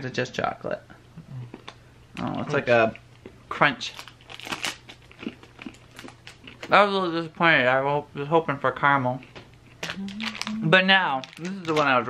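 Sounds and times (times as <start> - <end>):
person chewing crunchy chocolate: 3.9 - 6.7, 9.6 - 11.8.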